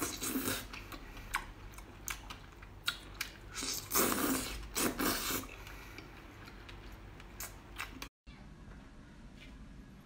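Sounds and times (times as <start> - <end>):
wet chewing clicks: 0.0 - 8.1
loud slurps: 3.5 - 5.8.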